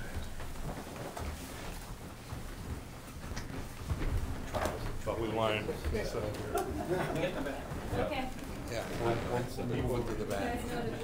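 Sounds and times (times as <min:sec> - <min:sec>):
people shuffling about: 0:00.0 - 0:11.0.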